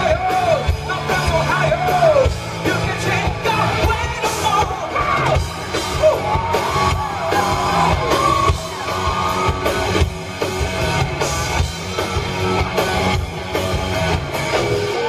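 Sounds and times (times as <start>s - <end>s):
man singing and yelling: 0.0s - 6.8s
live rock band: 0.0s - 15.0s
steady drum beat: 0.0s - 15.0s.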